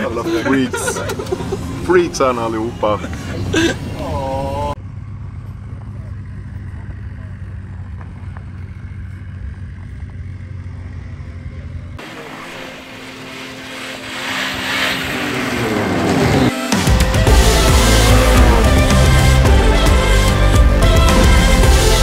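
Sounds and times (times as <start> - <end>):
snowmobile engine running: 4.8 - 22.0.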